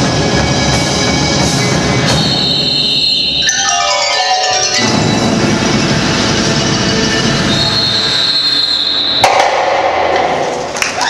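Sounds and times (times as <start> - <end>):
percussion ensemble playing: 0.0 - 8.2
final percussion hit ringing: 4.4 - 7.4.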